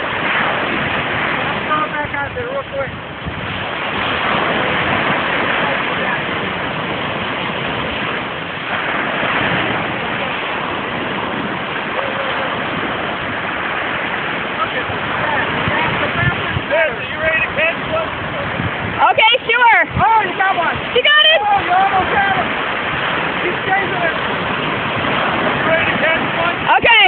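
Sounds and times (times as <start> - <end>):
ocean surf washing onto beach: 0.0 - 27.0.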